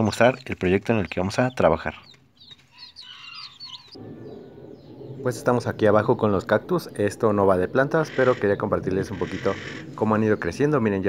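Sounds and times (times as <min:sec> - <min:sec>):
chicks peeping: 0:00.0 - 0:04.9.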